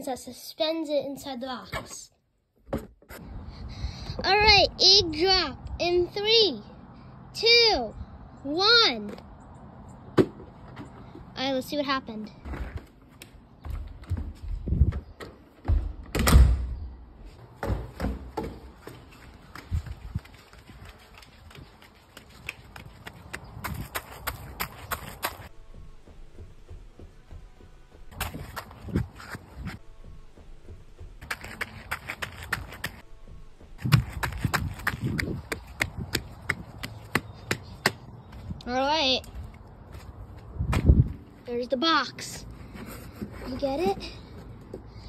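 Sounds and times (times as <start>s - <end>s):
knocks and thumps: 2.6s - 3.2s
footsteps and scuffing: 12.1s - 16.1s, 17.2s - 44.9s.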